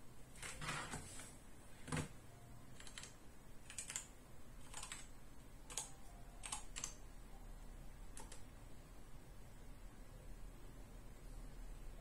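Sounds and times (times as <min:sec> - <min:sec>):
keyboard typing: 0:00.3 - 0:01.0, 0:02.7 - 0:07.1, 0:08.0 - 0:08.6.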